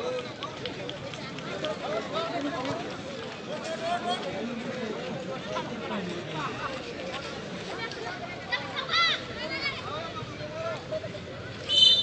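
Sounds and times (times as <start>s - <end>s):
spectators talking and calling out: 0.0s - 12.0s.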